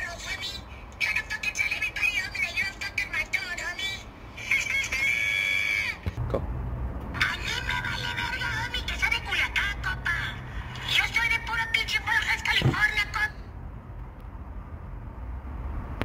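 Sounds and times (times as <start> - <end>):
high-pitched cartoon voice talking: 0.0 - 6.0
steady low hum: 0.0 - 16.0.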